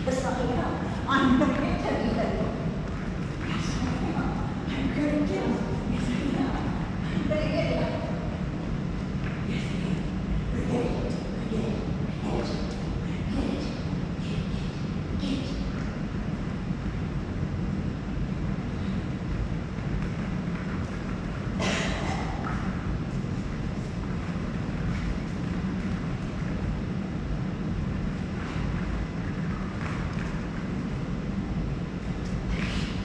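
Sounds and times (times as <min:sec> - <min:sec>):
low rumbling background noise: 0:00.0 - 0:33.0.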